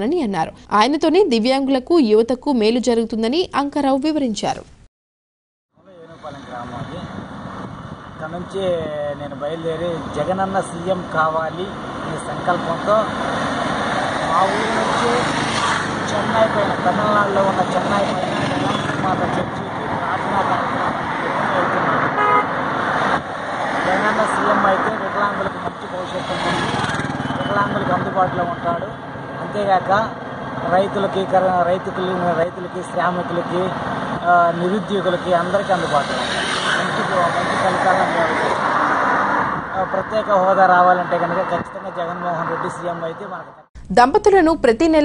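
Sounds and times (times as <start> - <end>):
highway traffic: 5.7 - 43.7
man speaking: 5.8 - 7.1, 8.2 - 13.1, 14.3 - 15.3, 16.0 - 22.0, 23.8 - 26.8, 27.4 - 30.1, 30.7 - 38.6, 39.7 - 43.6
man talking: 5.8 - 7.1, 8.2 - 13.1, 14.3 - 15.3, 16.0 - 22.0, 23.8 - 26.8, 27.4 - 30.1, 30.7 - 38.6, 39.7 - 43.6
vehicle passing close by: 9.4 - 32.4, 33.2 - 43.1.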